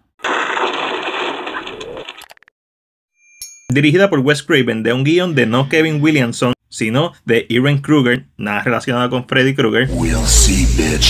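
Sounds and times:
noisy rush: 9.9 - 11.0.

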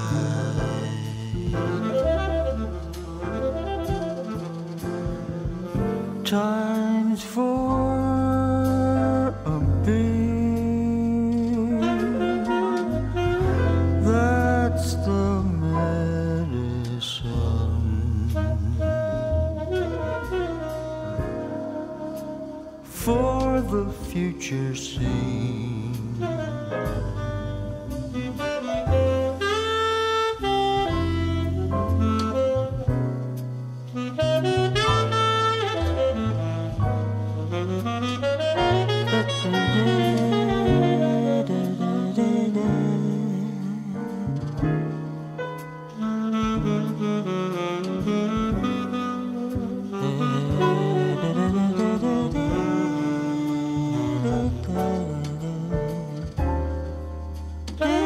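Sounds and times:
drums: 0.0 - 58.0
steady low bass: 0.0 - 58.0
tenor saxophone jazz solo: 0.0 - 58.0
horn playing long notes: 11.6 - 15.4, 18.2 - 23.1, 26.2 - 32.9, 33.9 - 43.9, 45.9 - 56.3, 57.7 - 58.0.

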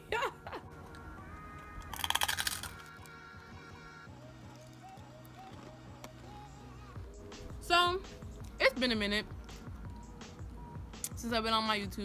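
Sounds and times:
faint background music: 0.0 - 12.0
crunching chip: 1.5 - 3.2.

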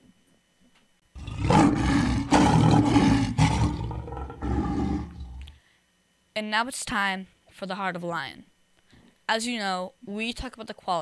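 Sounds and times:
lion roaring: 1.2 - 5.5.

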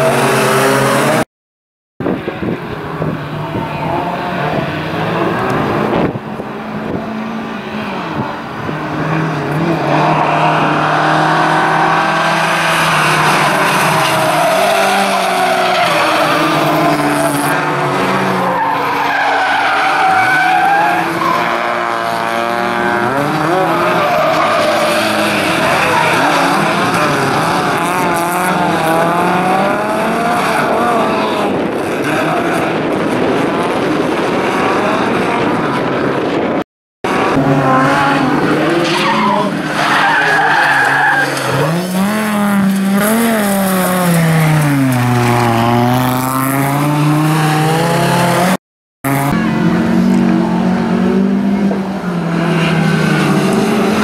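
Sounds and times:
race car engines revving: 0.0 - 1.2, 2.0 - 54.0.

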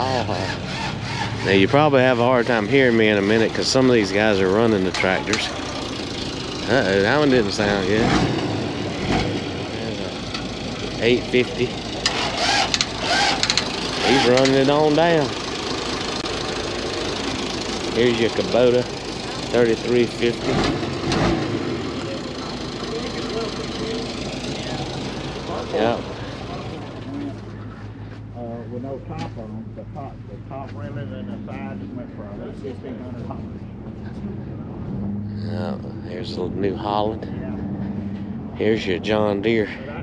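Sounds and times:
faint voices: 0.0 - 0.8, 1.4 - 5.9, 6.6 - 8.2, 9.0 - 12.1, 14.0 - 15.3, 17.7 - 20.8, 21.7 - 40.0
tractor diesel engine running roughly: 0.0 - 29.8.

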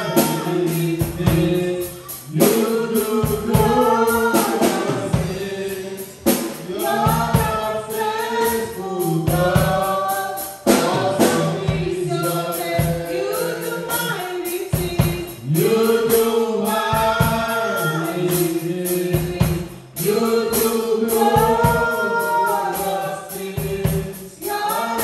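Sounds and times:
woman singing into a microphone: 0.0 - 5.4, 6.7 - 15.4, 19.0 - 23.0.

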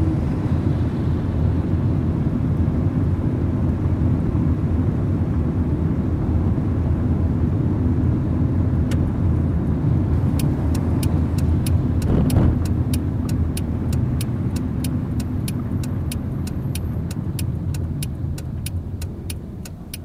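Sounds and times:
tyre and engine noise: 8.1 - 20.0
passing vehicle swish: 10.2 - 20.0
turn signal relay ticking: 10.3 - 20.0.

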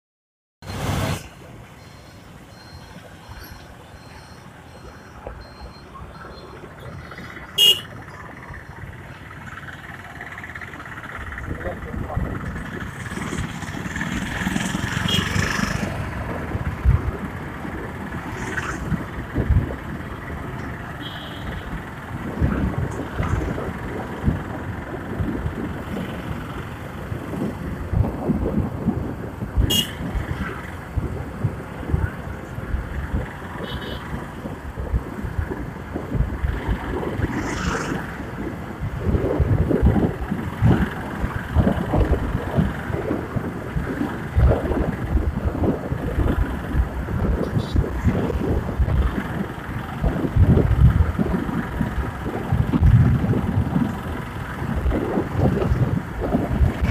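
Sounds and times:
road traffic rush: 0.6 - 56.9
short high beep: 1.8 - 6.6
motorcycle running: 4.8 - 56.9
vehicle horn toot: 7.6 - 8.0, 15.0 - 15.4, 21.0 - 21.6, 29.6 - 30.0, 33.6 - 34.1
wind buffeting microphone: 10.2 - 20.8, 21.6 - 56.9.

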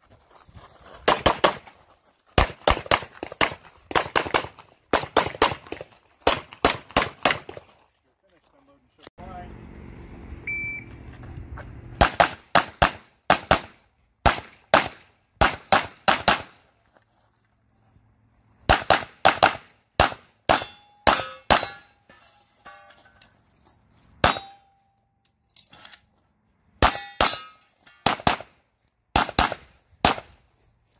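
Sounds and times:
pistol shots: 2.4 - 7.6, 12.0 - 16.6, 18.7 - 21.7, 28.0 - 28.5, 29.1 - 30.4.

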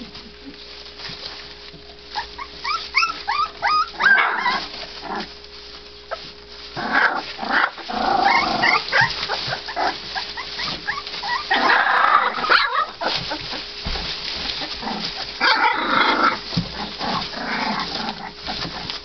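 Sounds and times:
puppies whining and squealing: 0.0 - 19.0.

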